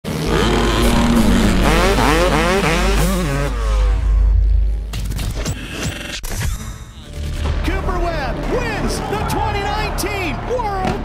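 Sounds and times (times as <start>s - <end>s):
motorcycle engine revving: 0.0s - 4.6s.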